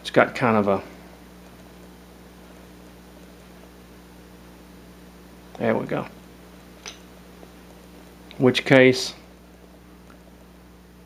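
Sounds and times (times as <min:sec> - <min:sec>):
low electrical hum with hiss: 0:00.0 - 0:11.0.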